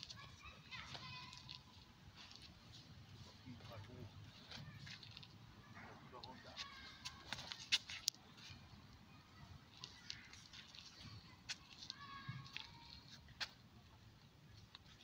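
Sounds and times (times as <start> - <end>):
distant children's voices and shouts: 0.0 - 15.0.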